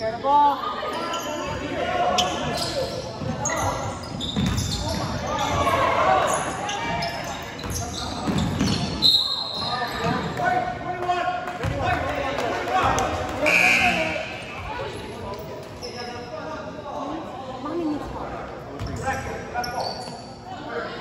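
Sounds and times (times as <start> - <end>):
players and spectators voices: 0.0 - 21.0.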